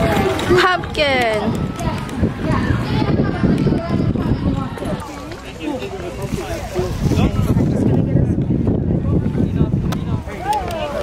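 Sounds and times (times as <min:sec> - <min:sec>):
faint voices: 0:00.0 - 0:11.0
wind buffeting microphone: 0:00.0 - 0:11.0.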